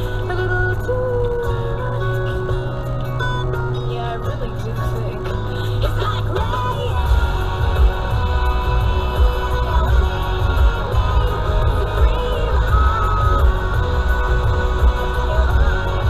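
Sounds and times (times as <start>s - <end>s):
music with heavy bass: 0.0s - 16.0s.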